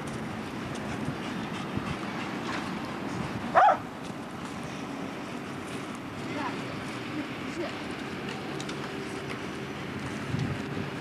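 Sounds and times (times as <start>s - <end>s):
road traffic: 0.0s - 11.0s
wind: 0.0s - 11.0s
large dog barking: 3.5s - 3.8s.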